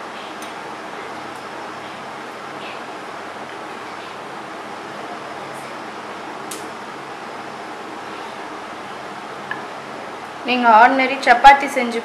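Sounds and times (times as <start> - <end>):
fan-like room hiss: 0.0 - 12.0.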